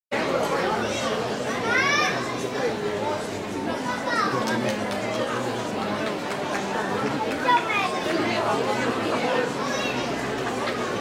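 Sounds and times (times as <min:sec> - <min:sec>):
many voices talking: 0:00.1 - 0:11.0
children's voices: 0:00.3 - 0:11.0.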